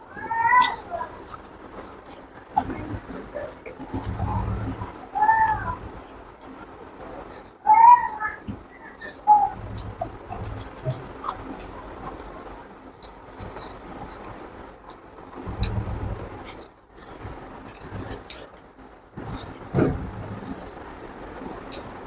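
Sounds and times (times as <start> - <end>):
low rumble: 15.4 - 22.0.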